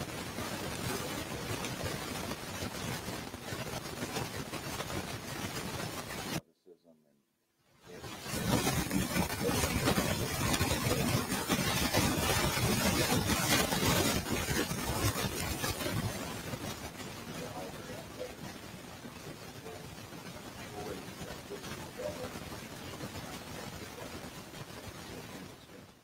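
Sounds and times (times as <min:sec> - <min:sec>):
man's voice under static: 0:00.0 - 0:07.2, 0:07.8 - 0:26.0
static hiss: 0:00.0 - 0:26.0.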